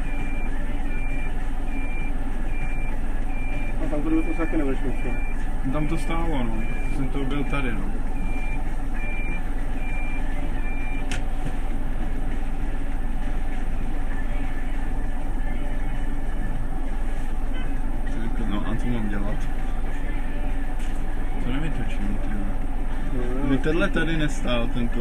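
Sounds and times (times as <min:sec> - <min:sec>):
high electronic warning beeper: 0:00.0 - 0:11.1
bus engine running: 0:00.0 - 0:25.0.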